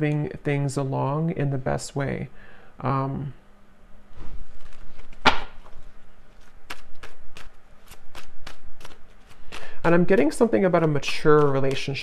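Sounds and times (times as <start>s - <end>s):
person speaking: 0.0s - 3.4s, 8.9s - 12.0s
cards being shuffled: 4.2s - 12.0s.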